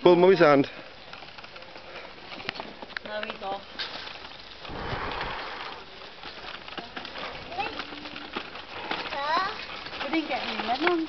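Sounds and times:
footsteps on stone path: 0.8 - 11.0
wind noise on microphone: 4.6 - 5.8.

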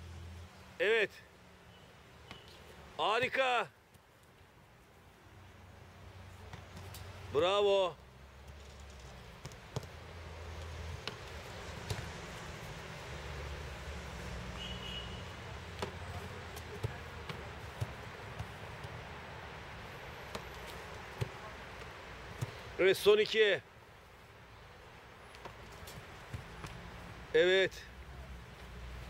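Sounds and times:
footballs knocking: 9.3 - 12.4, 16.6 - 19.1.

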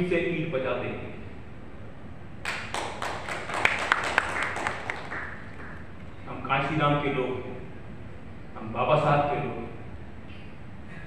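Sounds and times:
small audience clapping: 2.4 - 6.0.

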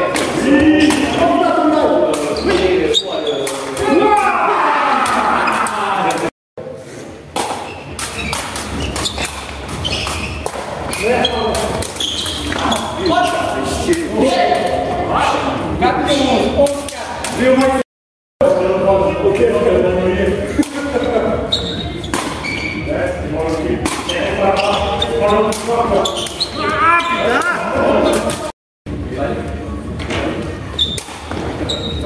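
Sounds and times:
people talking and calling out: 0.0 - 6.3, 18.4 - 32.0.

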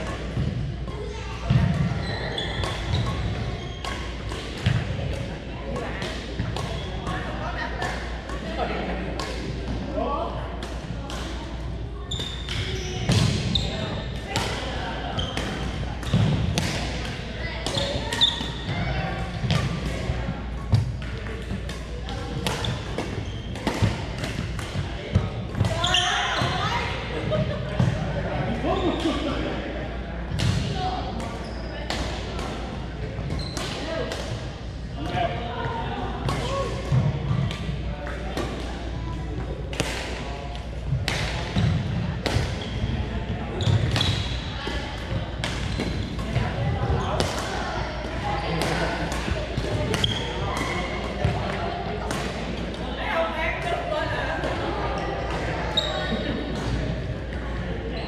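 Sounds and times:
players' voices in a gym hall: 0.0 - 58.0.

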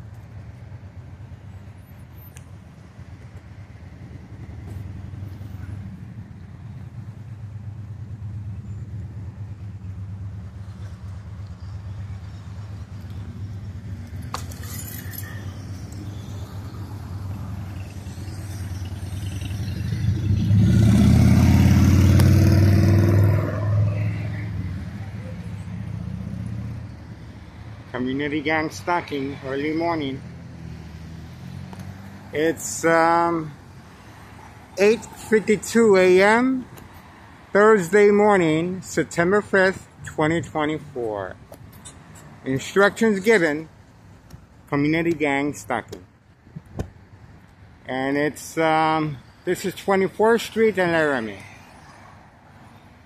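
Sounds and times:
street traffic rumble: 0.0 - 53.0
vehicle passing close: 3.6 - 38.1.

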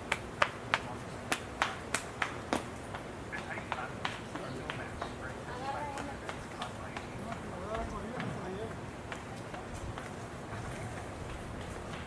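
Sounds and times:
indistinct chatter of voices: 3.2 - 12.0.

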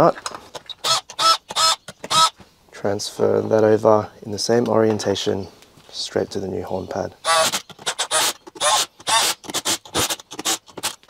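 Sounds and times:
man speaking: 2.8 - 7.2.

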